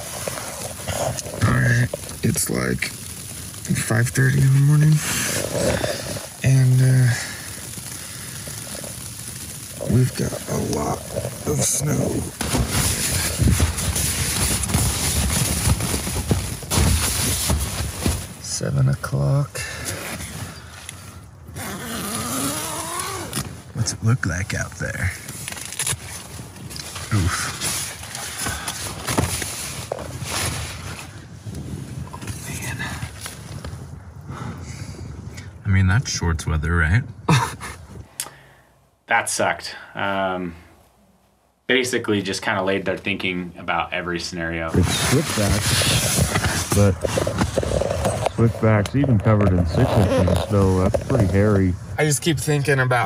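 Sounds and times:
snow and rain pattering on tent: 0.0 - 41.0, 41.7 - 53.0.

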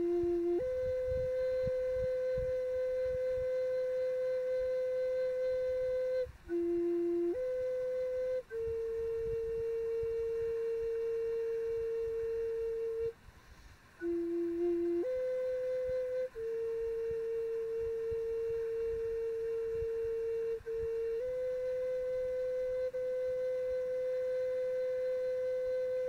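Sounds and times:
flute playing slow melody: 0.0 - 26.0.

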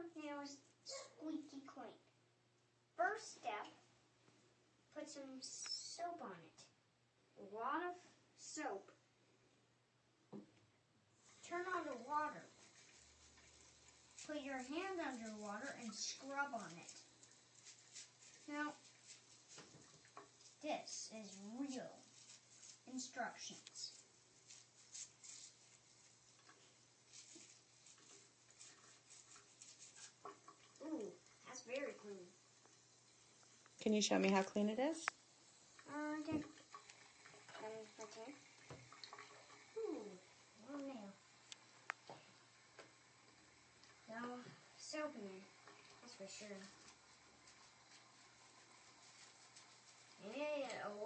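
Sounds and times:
nail brush scrubbing fingernails: 11.7 - 30.8.

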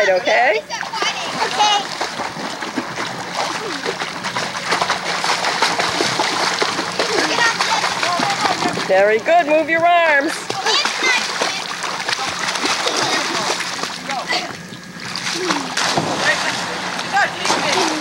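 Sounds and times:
pool water splashing: 0.0 - 18.0.

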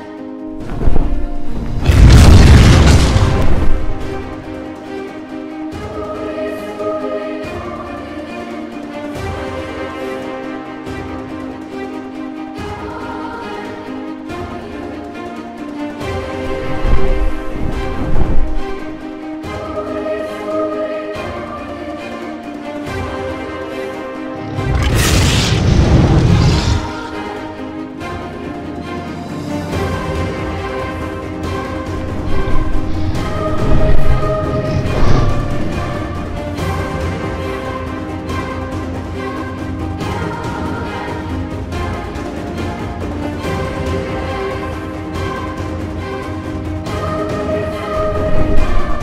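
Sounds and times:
music: 0.0 - 49.0
cinematic boom: 1.8 - 4.1, 24.5 - 27.0
rushing hiss: 24.6 - 27.2.

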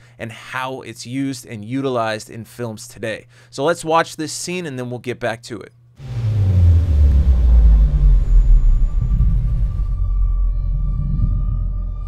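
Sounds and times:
deep steady rumble: 6.0 - 12.0.

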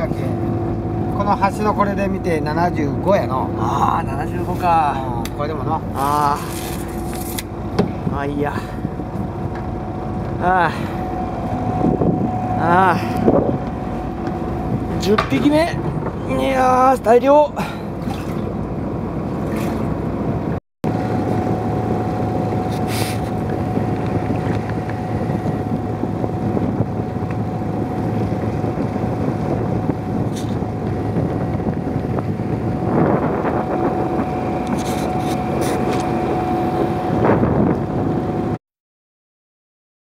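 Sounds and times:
boat engine humming: 0.0 - 38.6
wind noise on microphone: 4.0 - 16.8, 19.4 - 38.6.

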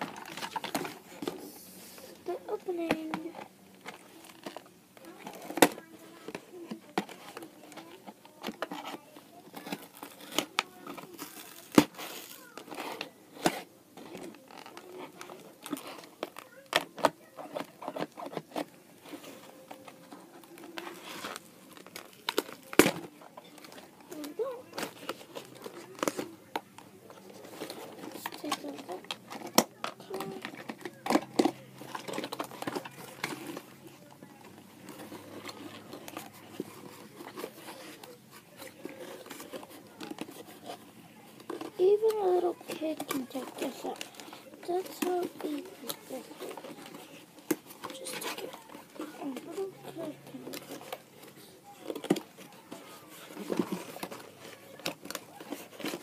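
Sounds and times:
packaging crinkling: 0.0 - 56.0
toy packaging being opened: 0.0 - 56.0.

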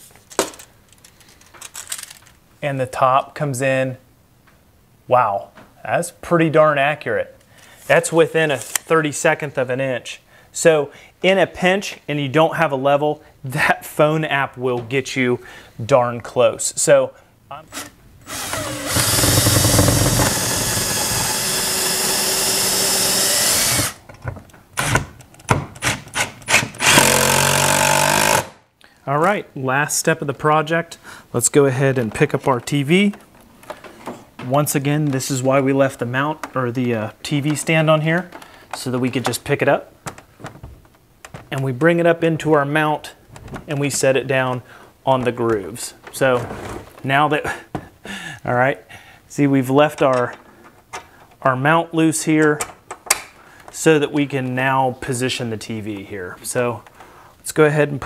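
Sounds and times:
cordless drill driving bolt: 17.7 - 24.0, 25.8 - 28.6.

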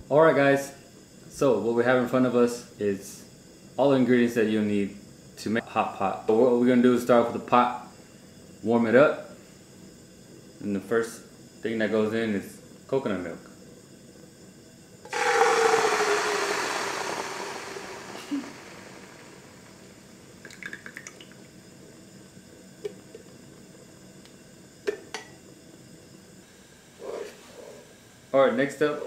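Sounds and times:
liquid hissing in hot pot: 15.1 - 20.2.

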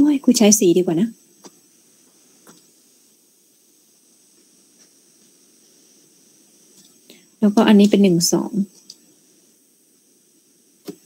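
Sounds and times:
faint high hiss: 0.0 - 11.0.

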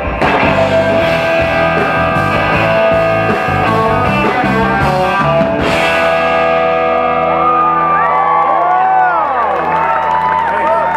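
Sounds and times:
electric guitar chord ringing: 0.0 - 8.8
audience whooping and shouting: 7.0 - 10.9.

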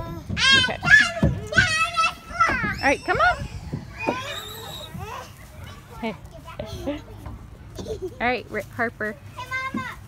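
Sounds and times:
children calling out: 0.0 - 6.7.

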